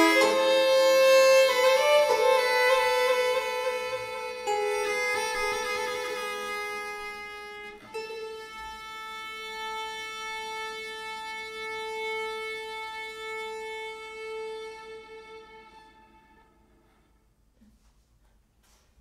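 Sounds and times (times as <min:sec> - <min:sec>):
harp: 0:00.0 - 0:17.2
violin: 0:00.0 - 0:17.2.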